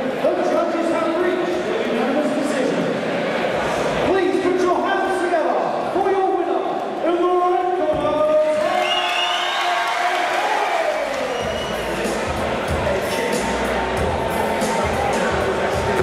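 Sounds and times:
crowd cheering: 8.2 - 16.0
music over speakers: 11.3 - 16.0.

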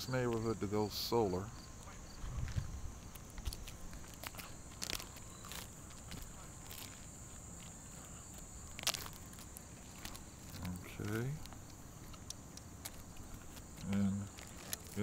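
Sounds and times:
high insect drone: 0.0 - 15.0
footsteps on shingle roof: 1.8 - 15.0.

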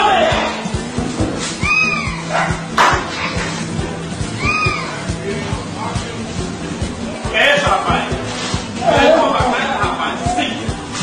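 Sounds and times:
background music with steady beat: 0.0 - 11.0
dog barking: 2.3 - 2.6.

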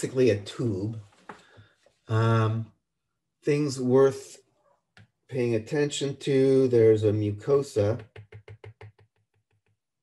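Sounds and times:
stylus tapping on screen: 7.9 - 9.8.

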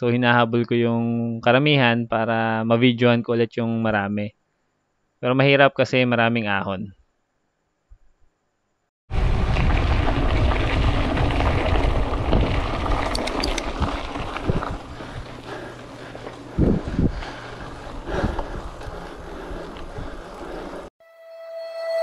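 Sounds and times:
wind rushing over microphone: 9.1 - 15.4, 16.5 - 20.8
tyre and road noise: 9.1 - 20.9
music: 21.0 - 22.0.

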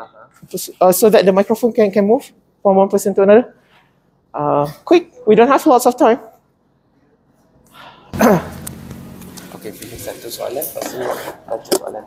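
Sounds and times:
murmur of room with people: 0.0 - 12.0.

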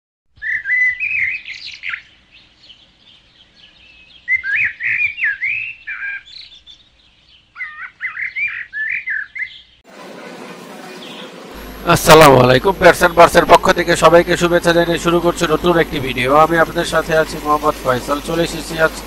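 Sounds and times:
songbird warbling: 0.4 - 9.8.

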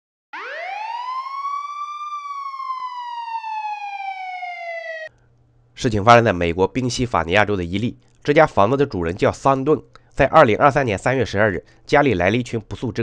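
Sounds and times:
siren wail: 0.3 - 5.1.

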